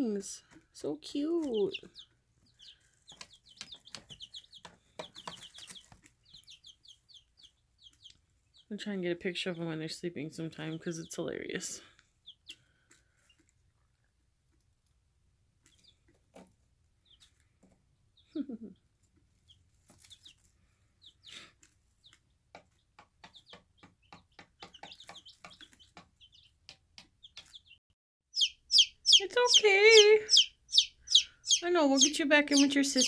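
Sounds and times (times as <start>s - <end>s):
chicks peeping and chirping: 0.2s - 14.2s, 15.5s - 33.0s
chick trill: 28.4s - 33.0s.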